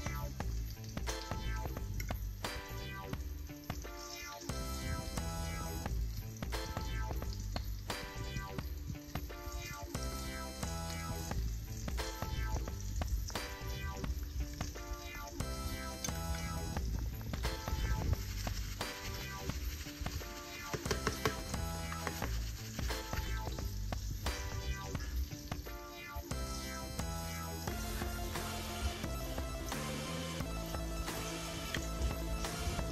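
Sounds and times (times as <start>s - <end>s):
music with steady beat: 0.0s - 32.9s
oil sizzling in a pan: 0.0s - 32.9s.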